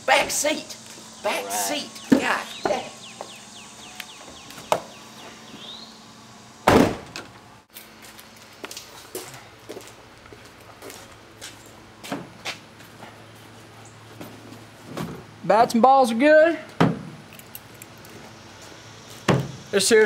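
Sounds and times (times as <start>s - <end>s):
truck door slamming: 6.6s - 7.3s, 19.2s - 19.6s.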